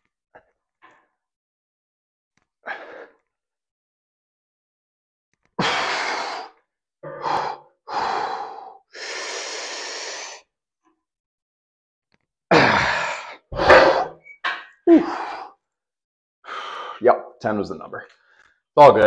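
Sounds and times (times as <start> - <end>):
man breathing hard: 5.6 - 6.6, 7.2 - 10.5, 14.9 - 15.6, 16.4 - 17.0.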